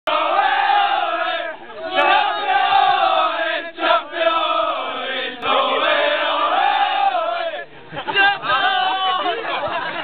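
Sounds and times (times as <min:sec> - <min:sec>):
players chanting together: 0:00.1 - 0:07.7.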